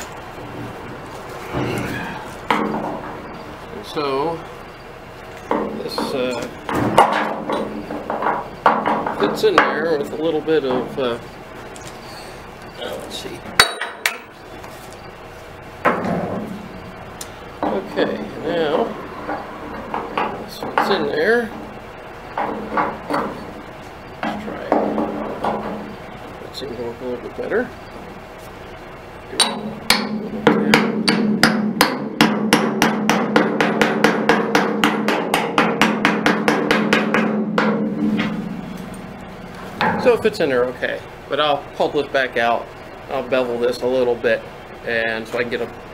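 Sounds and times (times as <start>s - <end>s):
metal ringing: 13.6s - 14.4s, 15.9s - 26.2s, 29.3s - 32.4s, 34.7s - 41.0s
sledgehammer beating steel plate: 29.4s - 40.5s.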